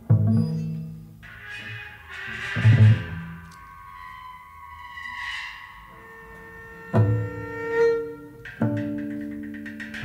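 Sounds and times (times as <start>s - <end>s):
cello bowed softly: 0.3s - 10.0s.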